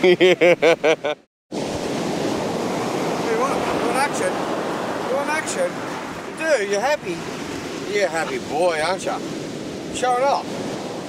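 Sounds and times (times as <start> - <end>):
person laughing: 0.0 - 1.2
surf rushing: 1.5 - 11.0
wind on microphone: 1.6 - 11.0.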